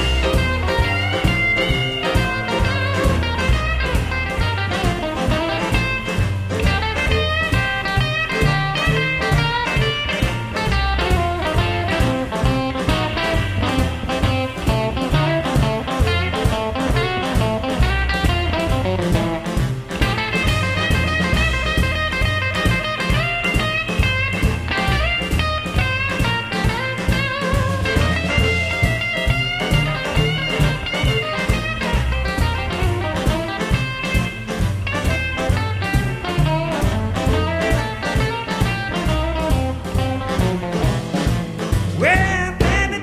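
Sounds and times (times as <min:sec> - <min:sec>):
electric guitar: 0:00.0 - 0:43.0
rhythm and blues band playing: 0:00.0 - 0:43.0.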